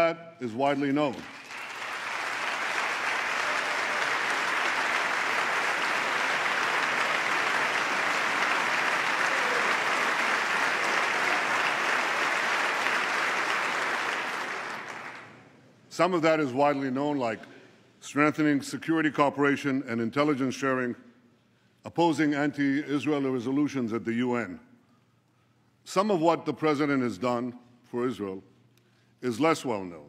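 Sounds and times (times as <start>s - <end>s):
large audience applauding: 1.2s - 15.4s.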